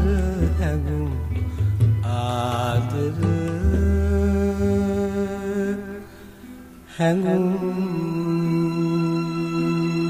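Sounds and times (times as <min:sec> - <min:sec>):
low sustained accompaniment: 0:00.0 - 0:10.0
person singing long notes: 0:00.0 - 0:10.0.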